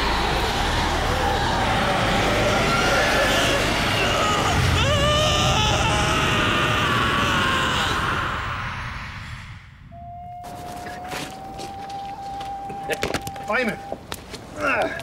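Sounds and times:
loud noise: 0.0 - 10.2
man screaming: 1.9 - 8.8.

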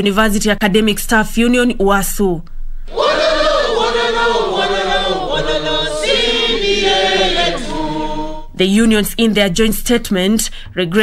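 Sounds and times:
crowd singing a chant: 2.9 - 8.6.

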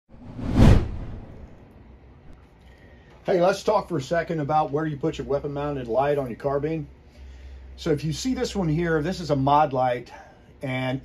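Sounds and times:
whoosh with deep rumble: 0.1 - 1.7.

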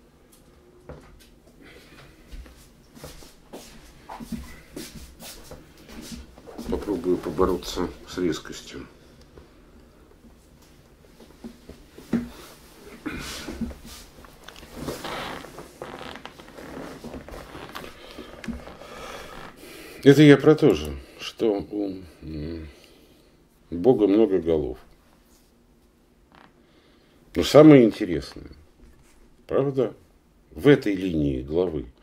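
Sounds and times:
rustling: 10.2 - 19.6.

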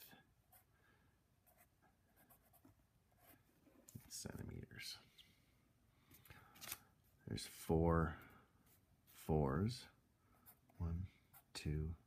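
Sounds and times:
pen scratching on paper: 1.4 - 3.4.

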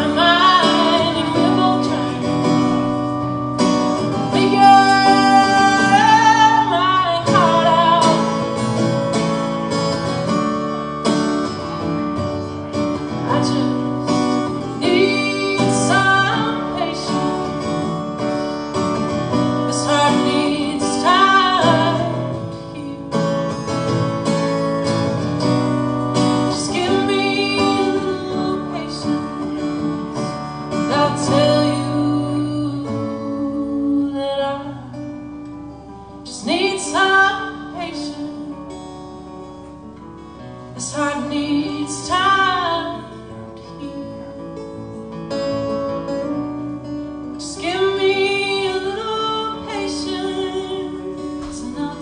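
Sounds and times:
woman singing slow song: 0.0 - 8.4, 13.0 - 18.0, 19.6 - 23.5, 26.3 - 30.0, 30.7 - 35.4, 36.1 - 39.1, 40.7 - 44.7, 47.2 - 52.0
acoustic guitar chords: 0.0 - 52.0.

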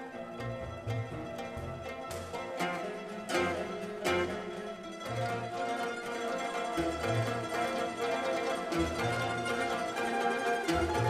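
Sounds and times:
mandolin orchestra playing: 0.0 - 11.0.

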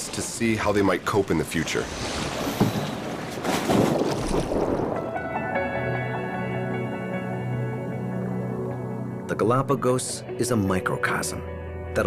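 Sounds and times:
wind buffeting microphone: 1.5 - 5.5.

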